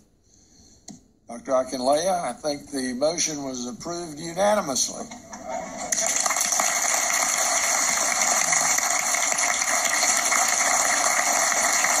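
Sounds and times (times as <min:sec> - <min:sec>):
people clapping: 0:05.7 - 0:12.0.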